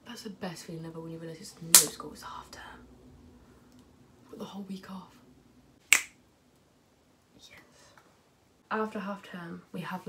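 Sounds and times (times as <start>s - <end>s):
finger snap: 5.9s - 6.2s.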